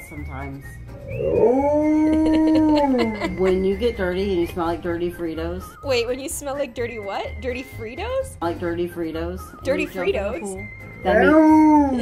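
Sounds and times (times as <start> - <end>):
dog howling: 1.2 - 3.3, 11.1 - 12.0.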